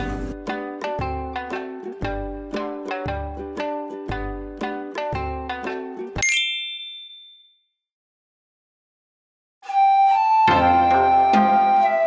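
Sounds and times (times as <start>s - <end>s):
plucked-string background music: 0.0s - 6.2s, 10.4s - 12.0s
bell-like ding: 6.2s - 7.7s.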